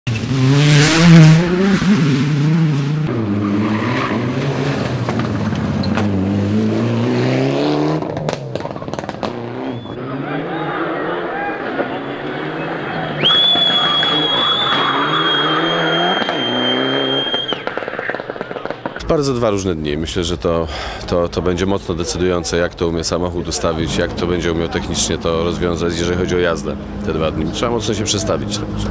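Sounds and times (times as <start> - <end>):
rally car engine accelerating: 0.1 - 18.7
high-pitched squeal: 9.6 - 18.6
sharp cracks: 13.2 - 19.2.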